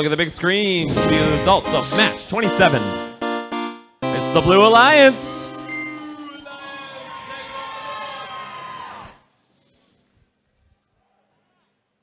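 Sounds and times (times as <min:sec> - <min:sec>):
short musical jingle: 0:00.9 - 0:06.4.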